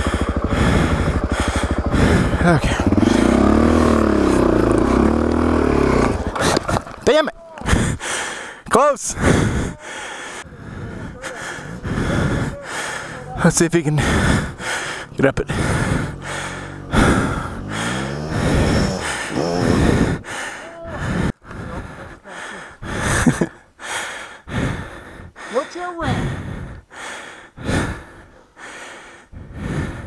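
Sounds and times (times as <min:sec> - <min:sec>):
heavy panting: 0:00.0 - 0:06.7, 0:07.6 - 0:30.0
dirt bike engine revving: 0:00.0 - 0:06.9, 0:11.0 - 0:21.3.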